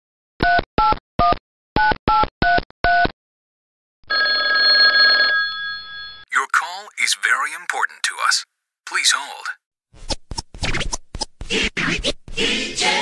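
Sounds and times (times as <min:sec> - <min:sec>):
telephone ringing: 0:04.1 - 0:07.8.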